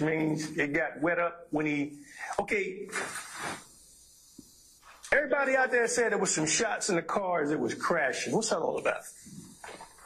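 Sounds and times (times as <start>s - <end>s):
faint steady recording hiss: 0.0s - 10.0s
short breathy hiss: 2.0s - 5.2s.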